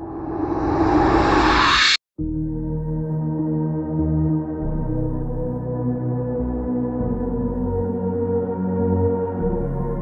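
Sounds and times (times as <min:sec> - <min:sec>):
whoosh riser: 0:00.0 - 0:02.0.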